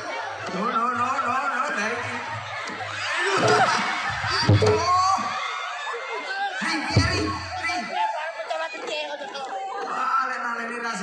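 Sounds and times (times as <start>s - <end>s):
several voices chattering: 0.0s - 11.0s.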